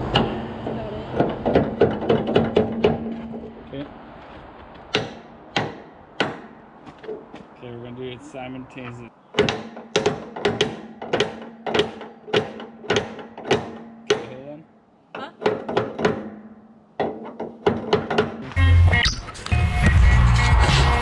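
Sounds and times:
sledgehammer striking steel: 0.0 - 3.6, 9.4 - 14.5
music with heavy bass: 18.4 - 21.0.

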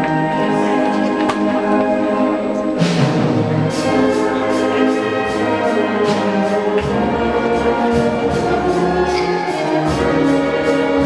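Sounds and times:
deep low brass notes: 0.0 - 11.0
wind band playing chords: 0.0 - 11.0.

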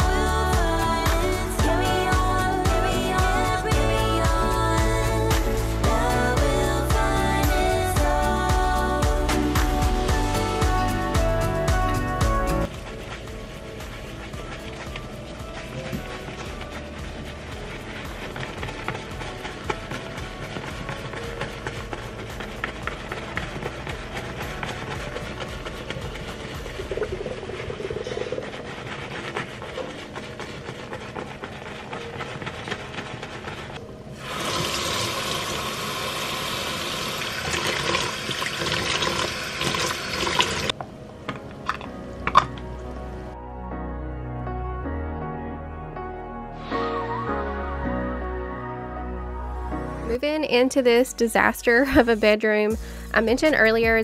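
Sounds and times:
brush scrubbing on silicone pad: 0.0 - 40.8
background music: 0.0 - 54.0
faucet running: 34.2 - 40.7.

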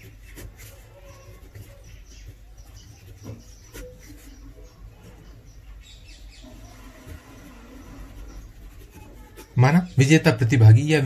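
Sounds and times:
pen scratching on paper: 6.6 - 10.0.

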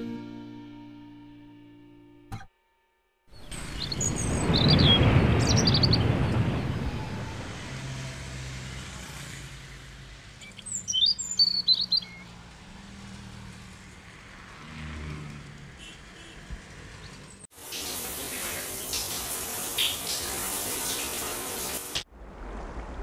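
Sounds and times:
small birds chirping: 3.4 - 6.6, 10.4 - 12.3
loud rush of noise: 3.5 - 8.8.

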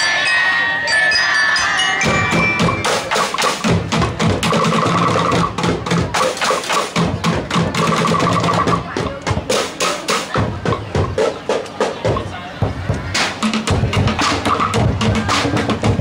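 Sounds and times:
percussion on plastic barrels: 2.0 - 16.0.

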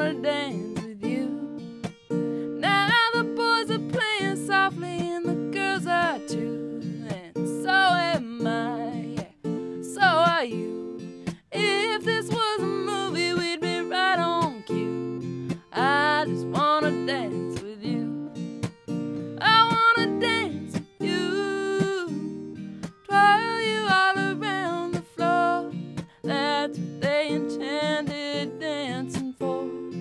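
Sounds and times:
strummed acoustic guitar: 0.0 - 30.0
woman singing country song: 0.0 - 30.0.

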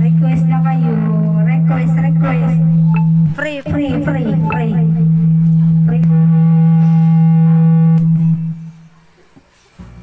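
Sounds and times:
karaoke backing track chord: 0.0 - 9.2.

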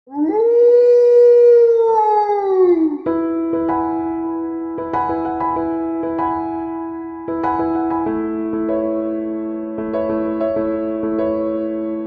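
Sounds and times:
wolf howling: 0.1 - 3.2
piano music: 0.2 - 12.0.

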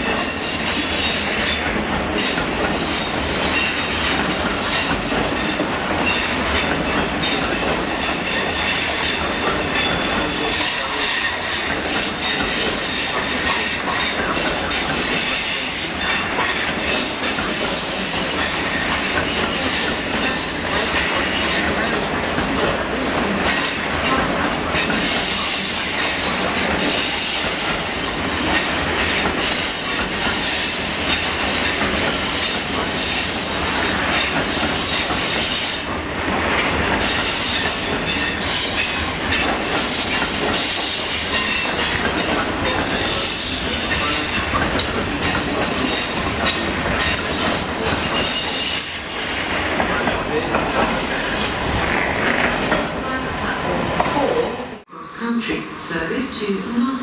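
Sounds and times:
train wheels squealing: 0.0 - 22.4, 24.7 - 35.9, 36.6 - 52.4
wheels clattering over rail joints: 0.7 - 53.1.

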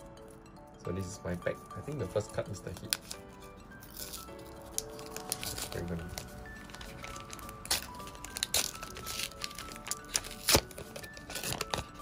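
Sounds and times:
background music: 0.0 - 12.0
foil wrapper tearing: 2.6 - 12.0.

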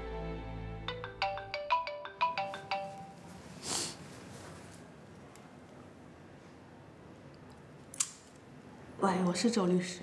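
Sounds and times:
background music: 0.0 - 3.3
phone ringtone melody: 0.9 - 3.4.

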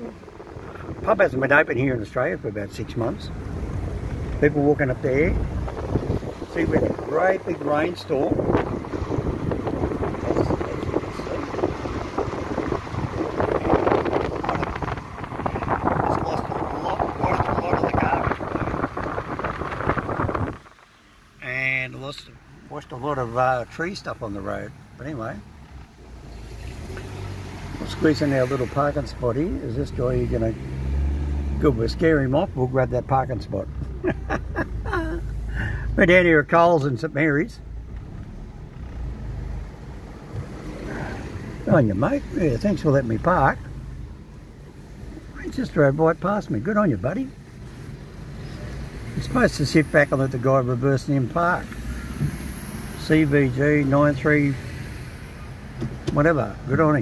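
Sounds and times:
car engine rumble from inside: 0.0 - 57.0
road and tyre noise: 0.0 - 57.0
wind buffeting microphone: 5.2 - 20.8.

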